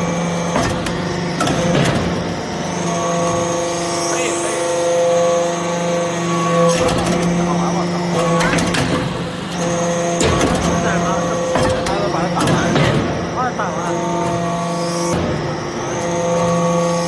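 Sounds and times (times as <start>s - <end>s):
hydraulic power unit humming: 0.0s - 17.0s.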